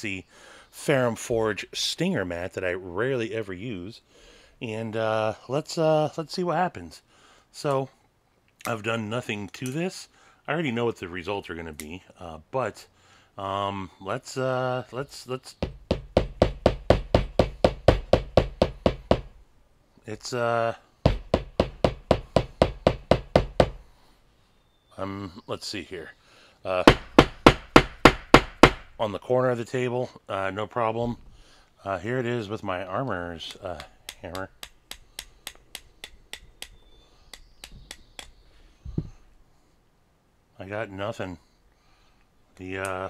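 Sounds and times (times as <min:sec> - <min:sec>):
mallet tapping knife spine: 0:33.5 - 0:38.3.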